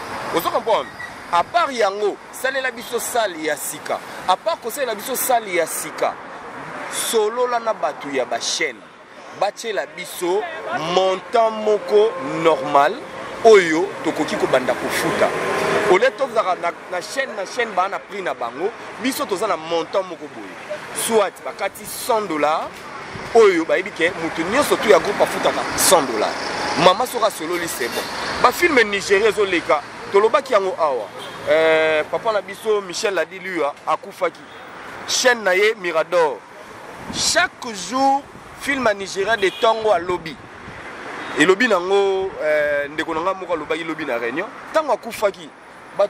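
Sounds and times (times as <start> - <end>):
passing road vehicle: 0.0 - 39.2, 39.8 - 46.0
man talking: 0.3 - 36.4, 37.1 - 40.4, 41.4 - 46.0
motor vehicle passing: 10.5 - 17.0.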